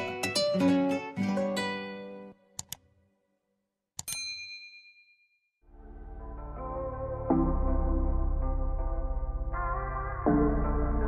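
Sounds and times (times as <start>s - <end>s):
bell-like ding: 4.0s - 5.5s
soft low music: 5.7s - 11.0s.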